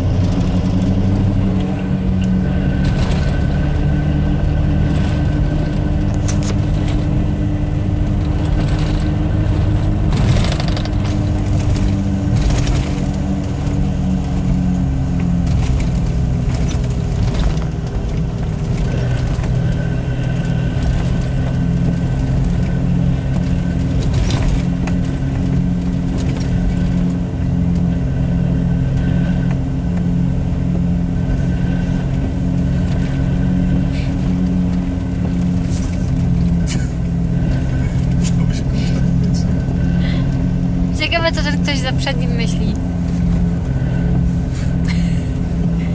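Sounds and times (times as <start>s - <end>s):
car engine drone: 0.0s - 45.9s
road noise inside car: 0.0s - 45.9s.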